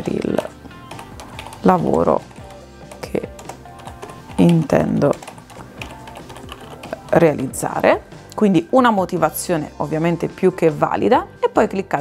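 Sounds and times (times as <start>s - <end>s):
keyboard typing: 0.0s - 7.8s.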